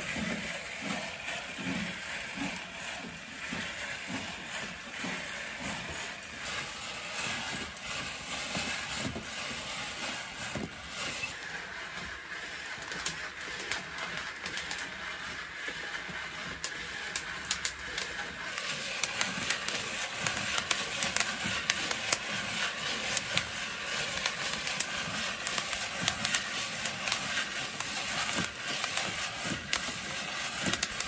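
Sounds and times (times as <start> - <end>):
coffee beans rattling in drum roaster: 0.0 - 31.0.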